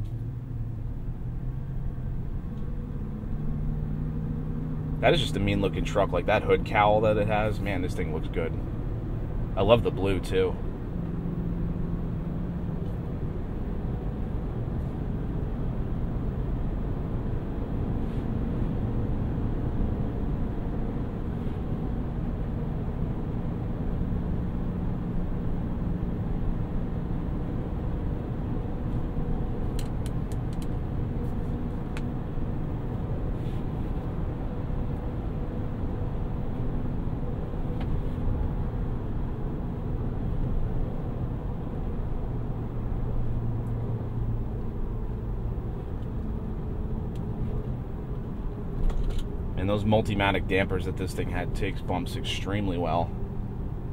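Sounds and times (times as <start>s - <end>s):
low engine hum: 0.0s - 53.9s.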